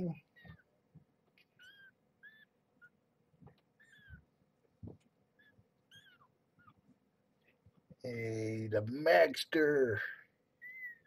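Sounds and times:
kittens mewing: 0:01.5 - 0:03.0, 0:03.8 - 0:04.3, 0:05.4 - 0:06.8.

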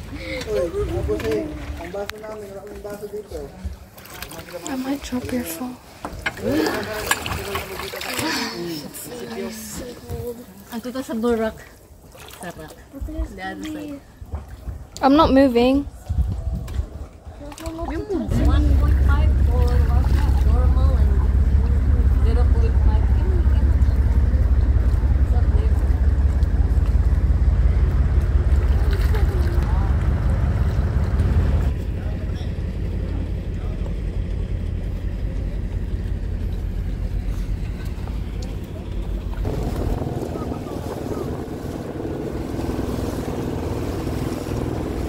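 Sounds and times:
wind rumble on microphone: 0:14.2 - 0:45.0
boat engine running: 0:18.2 - 0:45.0
faint voices: 0:18.2 - 0:45.0.

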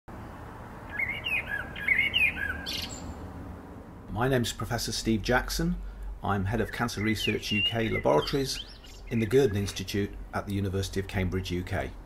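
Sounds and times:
bird chirping: 0:00.3 - 0:03.2, 0:06.3 - 0:10.2.

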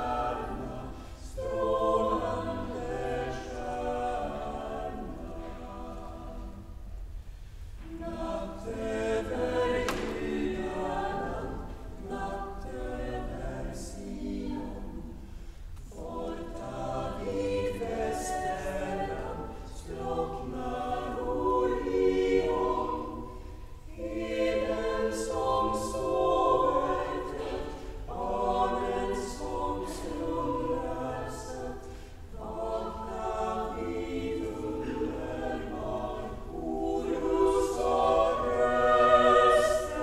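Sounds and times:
girls' choir singing: 0:00.0 - 0:06.9, 0:07.8 - 0:15.2, 0:15.8 - 0:40.0.

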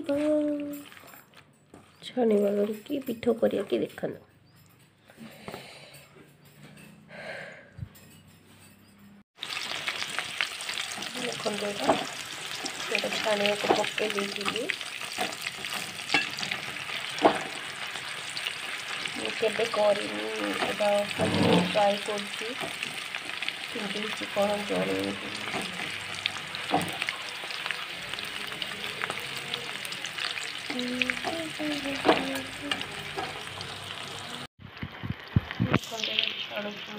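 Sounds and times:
deep-frying sizzling and crackling: 0:09.4 - 0:36.9.

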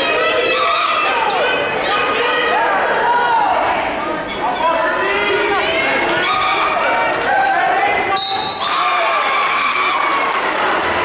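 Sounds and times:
people shouting in a gymnasium: 0:00.0 - 0:11.0.

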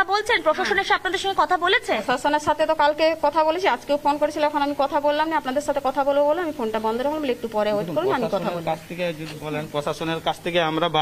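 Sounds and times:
woman speaking: 0:00.0 - 0:08.8.

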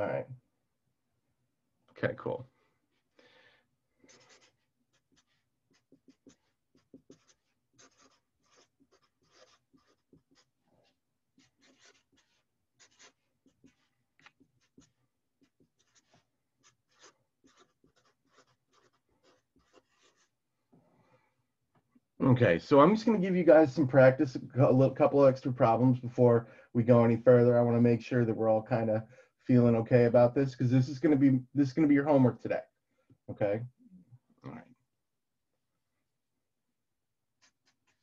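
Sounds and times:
marker writing on paper: 0:04.0 - 0:20.4, 0:37.4 - 0:38.0.

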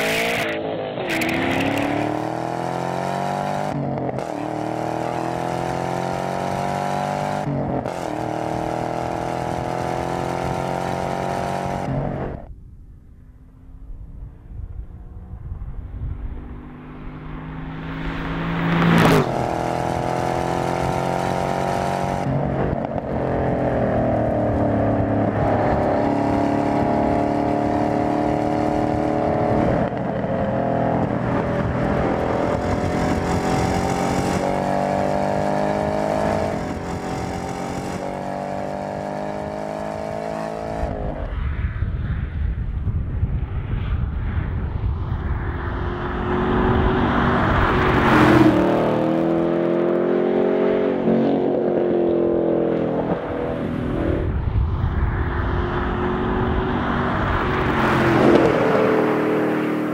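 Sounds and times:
car flying past: 0:15.2 - 0:21.0.

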